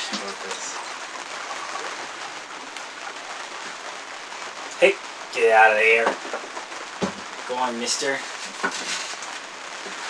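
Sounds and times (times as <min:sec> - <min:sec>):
rain falling on a boat deck: 0:00.0 - 0:10.0.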